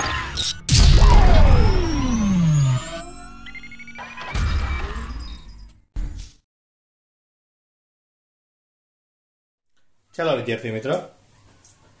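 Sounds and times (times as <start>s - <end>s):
synthesized tone sliding down: 0.7s - 4.0s
faint high rising tone: 1.0s - 4.2s.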